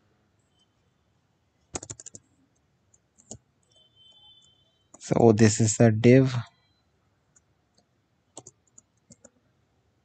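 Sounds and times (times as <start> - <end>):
keyboard keystrokes: 1.7 - 2.2, 8.4 - 9.4.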